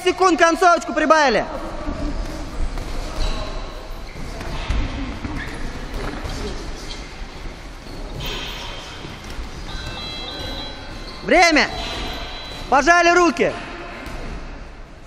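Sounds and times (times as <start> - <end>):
voices in a hall: 0.0 - 15.0
footwork on ring canvas: 1.5 - 15.0
faint steady high tone: 9.7 - 12.8.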